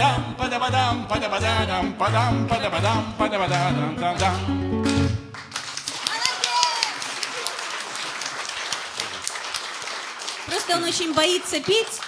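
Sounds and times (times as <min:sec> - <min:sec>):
audience applause: 0:04.2 - 0:12.0.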